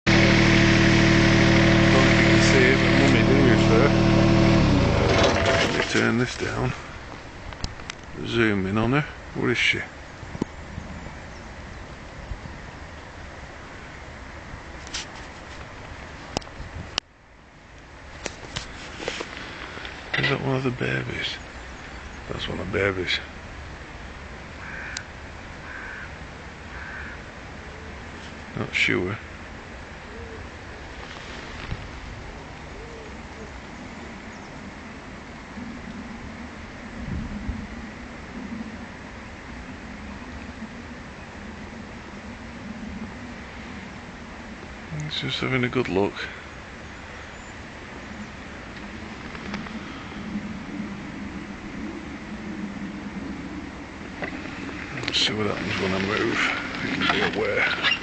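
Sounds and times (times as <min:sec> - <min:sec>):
engine hum: 0:00.0 - 0:58.0
steady low rumble: 0:00.0 - 0:58.0
person talking: 0:01.8 - 0:04.3, 0:05.4 - 0:06.8, 0:08.2 - 0:09.9, 0:20.1 - 0:21.4, 0:54.9 - 0:58.0
bird harsh calls: 0:19.1 - 0:22.5, 0:24.6 - 0:27.9, 0:53.4 - 0:58.0.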